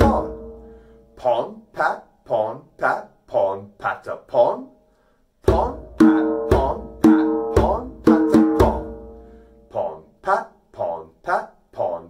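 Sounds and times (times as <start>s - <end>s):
man talking: 0.0s - 0.4s, 1.2s - 4.7s, 9.7s - 12.0s
djembe drumming: 0.0s - 0.6s, 5.4s - 9.2s.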